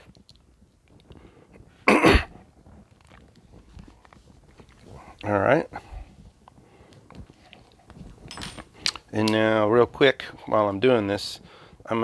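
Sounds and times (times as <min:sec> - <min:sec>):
man coughing: 0:01.9 - 0:02.4.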